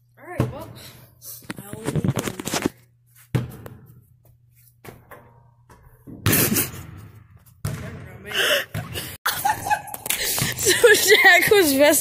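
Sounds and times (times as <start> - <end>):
boy laughing: 8.3 - 11.8.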